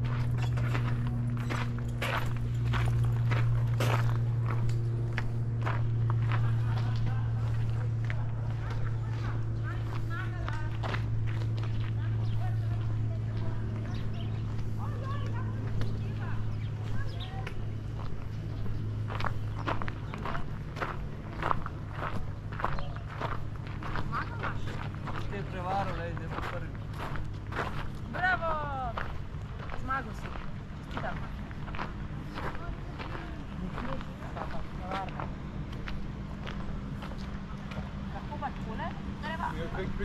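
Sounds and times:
footsteps on gravel: 0.0s - 40.0s
steady low hum: 0.0s - 40.0s
people talking: 6.2s - 17.8s, 23.9s - 26.8s, 28.1s - 29.1s, 29.7s - 31.5s, 32.3s - 35.3s, 37.6s - 40.0s.

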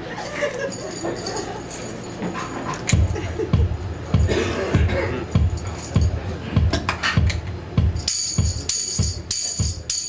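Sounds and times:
low thumping beat: 2.9s - 10.0s.

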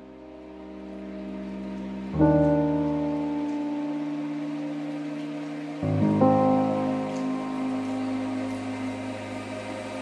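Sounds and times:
chill electronic music pad chord: 0.0s - 10.0s.

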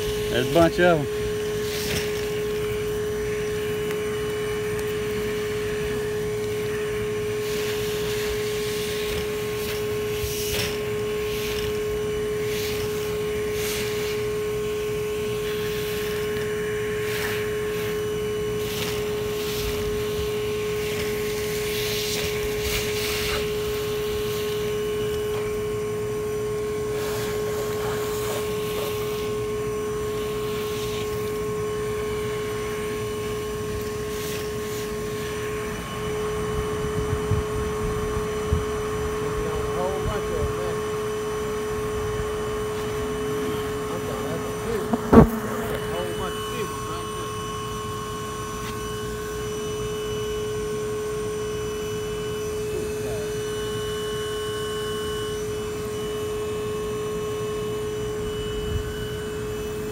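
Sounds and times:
hose sucking in bees: 0.0s - 35.9s, 42.4s - 47.4s
bee vacuum motor hum: 0.0s - 59.9s.

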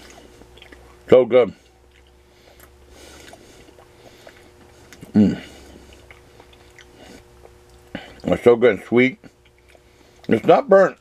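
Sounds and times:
wet mouth clicks chewing: 0.0s - 1.1s, 1.8s - 8.3s, 9.2s - 10.4s
faint steady hum: 0.0s - 11.0s.

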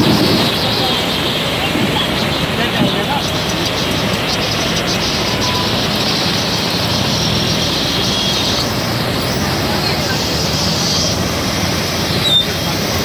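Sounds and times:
floodwater rushing: 0.0s - 13.0s
heavy rain: 0.0s - 13.0s.

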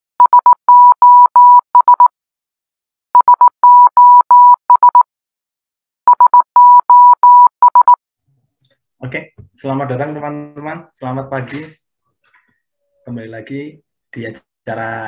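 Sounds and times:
electronic beeps in morse code: 0.2s - 2.1s, 3.2s - 5.1s, 6.1s - 8.0s.

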